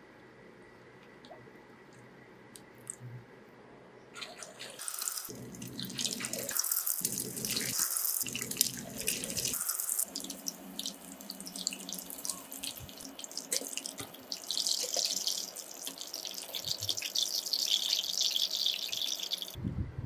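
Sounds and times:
chicken sizzling in hot oil: 4.2s - 19.6s.

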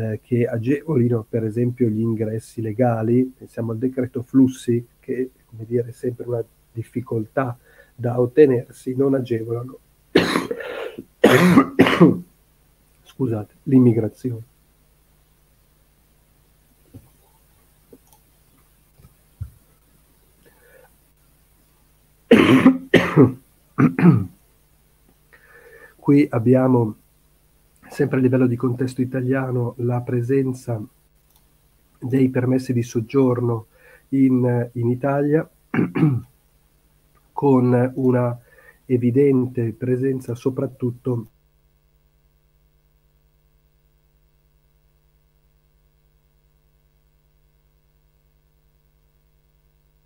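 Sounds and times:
faint electrical hum: 0.0s - 50.0s
man coughing: 10.2s - 12.2s, 22.3s - 24.3s, 35.7s - 36.3s.

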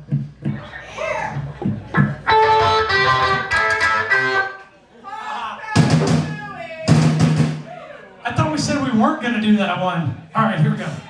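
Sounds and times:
electric guitar chords: 2.0s - 4.6s.

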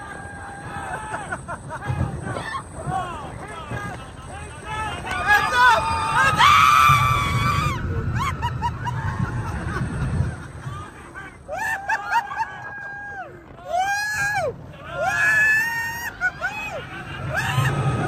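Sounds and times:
low rumble: 0.0s - 18.0s
riders screaming: 0.0s - 18.0s.

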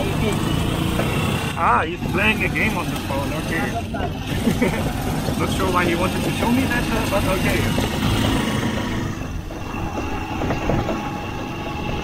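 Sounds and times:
road rumble: 0.0s - 12.0s
small motorcycle engine running: 0.0s - 12.0s.

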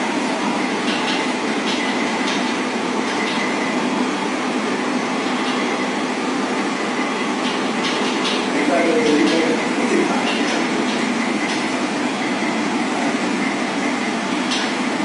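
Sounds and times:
train running: 0.0s - 15.0s.

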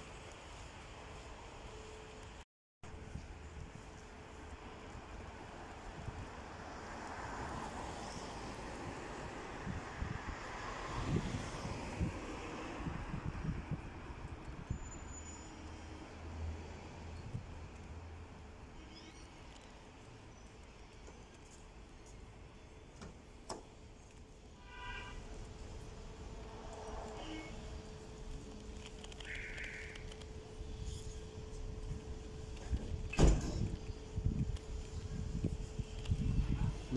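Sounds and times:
traffic rumble: 0.0s - 36.9s.

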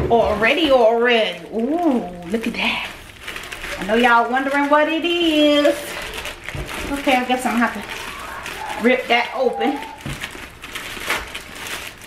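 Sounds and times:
plastic bag ripping and crinkling: 0.1s - 12.0s.

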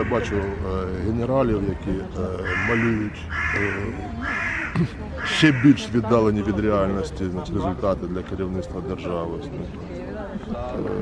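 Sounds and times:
crow cawing: 0.0s - 0.4s, 2.4s - 5.9s.

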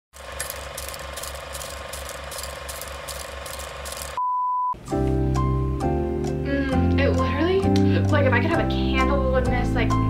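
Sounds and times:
film projector clattering: 0.2s - 4.2s.

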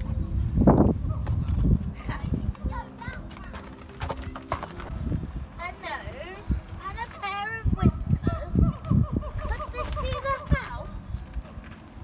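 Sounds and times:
footsteps crunching on gravel: 1.3s - 5.1s.

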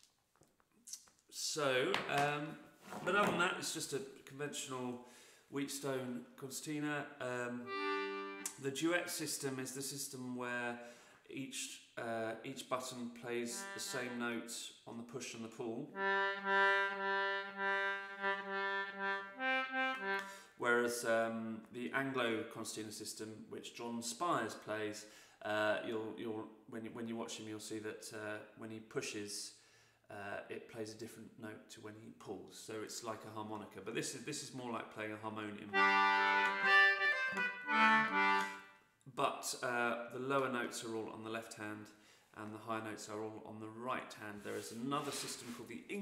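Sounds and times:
concertina playing notes: 7.6s - 8.6s, 13.5s - 14.5s, 16.0s - 20.4s, 35.7s - 38.7s.

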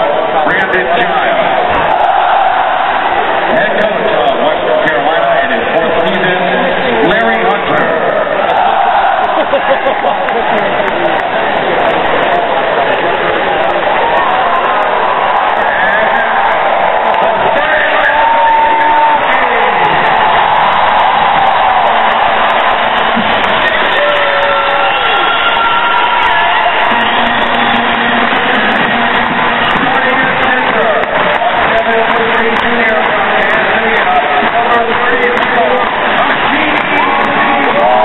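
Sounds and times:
people whooping and shouting: 0.0s - 5.0s, 7.7s - 38.0s
arena crowd cheering: 0.0s - 38.0s.

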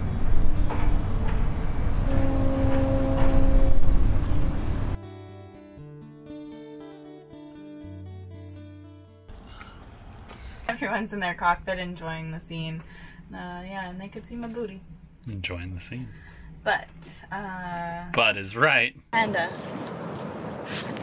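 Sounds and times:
steady tone: 0.0s - 5.0s
instrumental background music: 0.0s - 9.3s.

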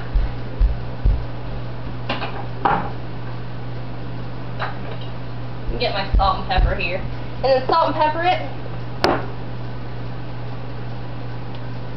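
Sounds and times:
steady low hum: 0.0s - 11.9s.

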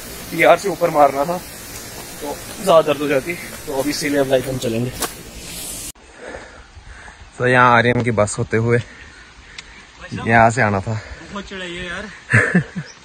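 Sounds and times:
background hiss: 0.0s - 13.0s
man talking: 0.3s - 1.5s, 2.2s - 5.0s, 10.0s - 12.2s.

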